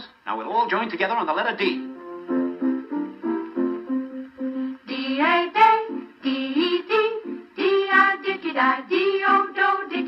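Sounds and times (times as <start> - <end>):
group of voices singing letters: 4.6 - 10.0.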